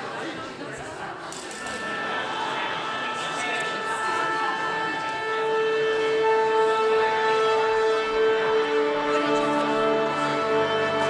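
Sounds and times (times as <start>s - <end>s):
opera singing held notes: 1.3s - 7.7s.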